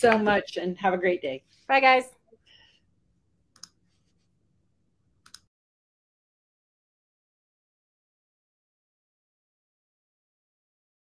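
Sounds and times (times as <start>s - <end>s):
computer click: 5.2s - 5.5s.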